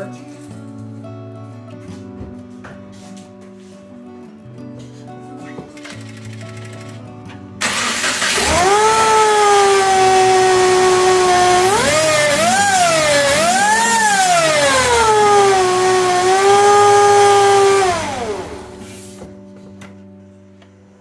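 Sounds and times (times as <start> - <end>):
supercharger whine: 7.6 - 19.1.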